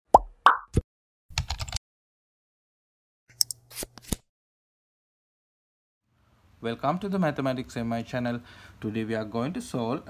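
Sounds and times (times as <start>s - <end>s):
rapid keyboard typing clicks: 1.4s - 1.8s.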